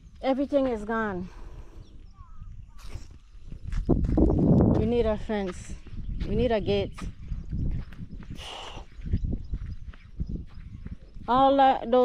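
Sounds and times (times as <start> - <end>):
footsteps on dry soil: 0.0 - 12.0.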